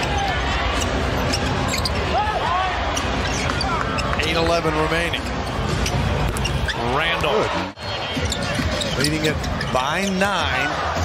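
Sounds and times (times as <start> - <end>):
arena crowd noise: 0.0 - 11.0
sneaker squeaks: 0.8 - 2.1, 2.9 - 4.4, 5.2 - 7.1, 7.8 - 10.6.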